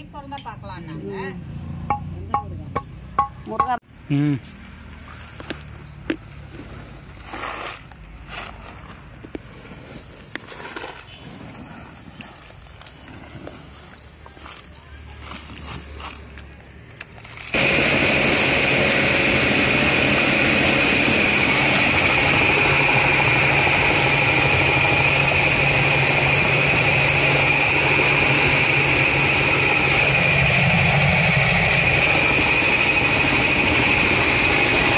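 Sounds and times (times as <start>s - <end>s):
flour mill grinding machine: 17.2s - 34.9s.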